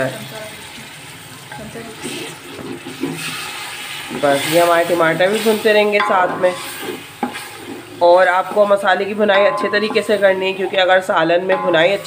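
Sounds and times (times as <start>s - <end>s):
masala sizzling: 0.0s - 12.0s
wooden spoon stirring: 1.9s - 12.0s.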